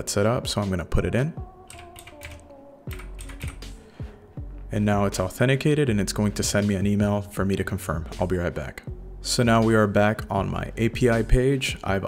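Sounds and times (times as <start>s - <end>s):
keyboard keystrokes: 1.7s - 3.6s.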